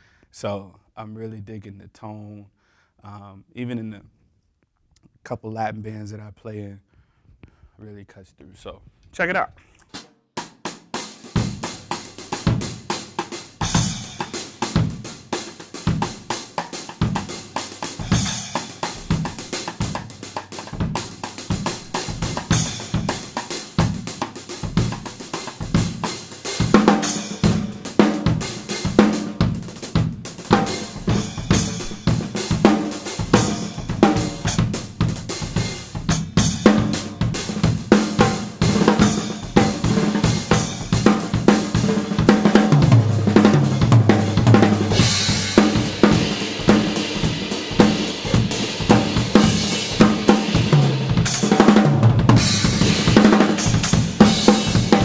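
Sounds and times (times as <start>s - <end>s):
drum kit groove: 9.3s - 55.0s.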